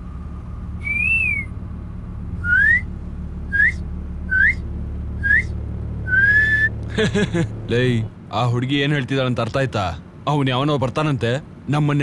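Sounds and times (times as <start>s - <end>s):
vehicle interior rumble: 0.0s - 12.0s
person whistling: 0.8s - 1.5s, 2.4s - 2.9s, 3.5s - 4.6s, 5.2s - 5.5s, 6.1s - 6.7s.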